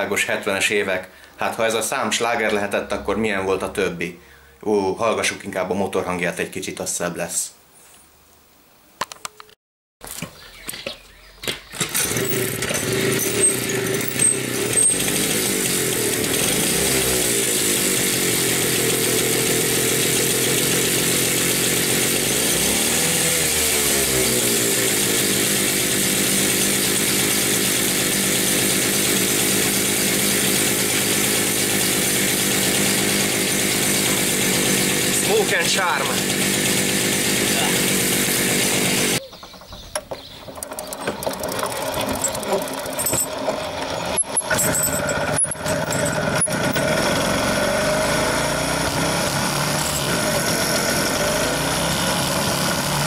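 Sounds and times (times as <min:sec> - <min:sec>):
moped engine revving and idling: 0:11.7 - 0:53.0.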